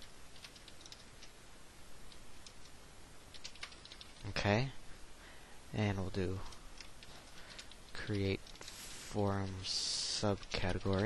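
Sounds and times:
keyboard typing: 0:00.3 - 0:01.4, 0:03.3 - 0:04.3, 0:06.4 - 0:08.8, 0:10.3 - 0:11.0.

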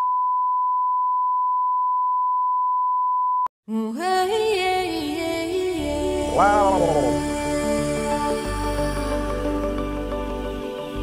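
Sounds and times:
music with singing: 0:04.0 - 0:11.0.

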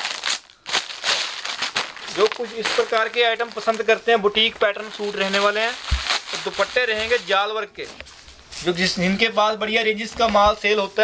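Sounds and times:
plastic packaging crinkling: 0:00.0 - 0:07.6.

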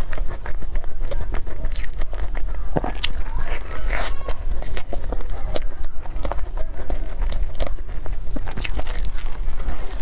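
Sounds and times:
chewing and crunching pastry: 0:00.0 - 0:10.0.

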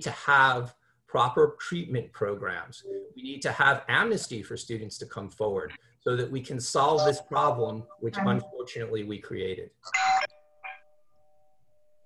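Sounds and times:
man speaking: 0:00.0 - 0:09.8
two-note chime: 0:07.0 - 0:08.6.

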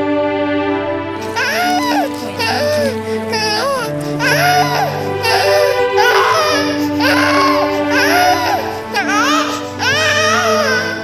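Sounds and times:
background music with held notes: 0:00.0 - 0:11.0
infant crying: 0:01.2 - 0:11.0.

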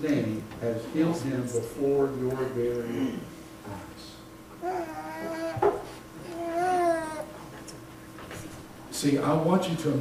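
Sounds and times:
faint room hum: 0:00.0 - 0:10.0
small child whining: 0:04.6 - 0:07.4.

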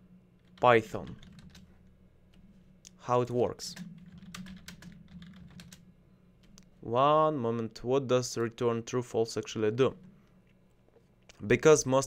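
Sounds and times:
computer keyboard typing: 0:00.5 - 0:01.7, 0:03.7 - 0:05.8.

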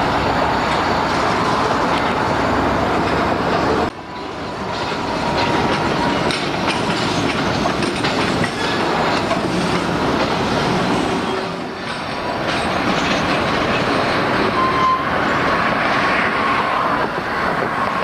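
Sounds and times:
freight train rumbling: 0:00.0 - 0:18.0
wheels clicking over rail joints: 0:02.8 - 0:14.7.

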